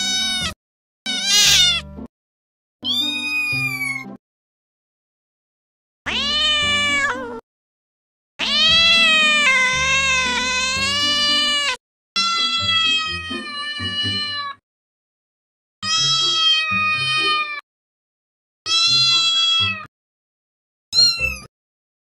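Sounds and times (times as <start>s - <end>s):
cat meowing: 0.0s - 1.9s, 2.8s - 4.2s, 6.1s - 7.4s, 8.4s - 14.6s, 15.8s - 17.6s, 18.7s - 19.9s, 21.0s - 21.5s.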